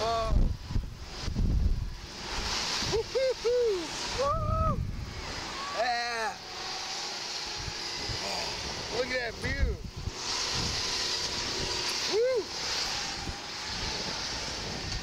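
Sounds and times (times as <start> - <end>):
wind buffeting microphone: 0.0 - 5.6, 6.3 - 15.0
riders crying out: 2.0 - 15.0.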